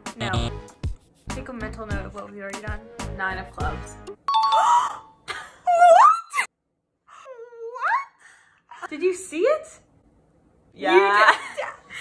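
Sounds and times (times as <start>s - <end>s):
young women shrieking: 5.7s - 6.5s.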